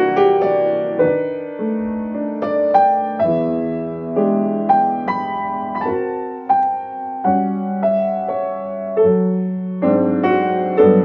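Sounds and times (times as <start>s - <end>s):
jazz piano chords: 0.0s - 11.0s.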